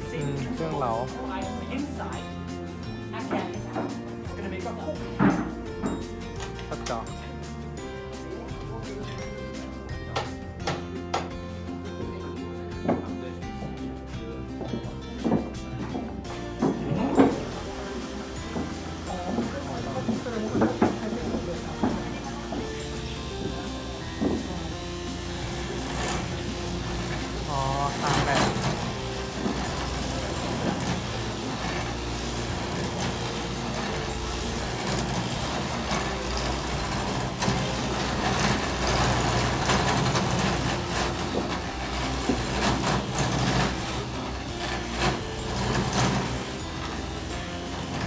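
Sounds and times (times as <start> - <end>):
cutters rasping wood: 14.5 - 48.0
machine low mechanical drone: 20.2 - 48.0.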